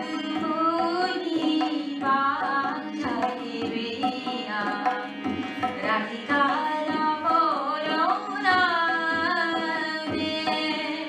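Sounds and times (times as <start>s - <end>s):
harmonium drone: 0.0s - 11.0s
woman singing devotional song: 0.0s - 11.0s.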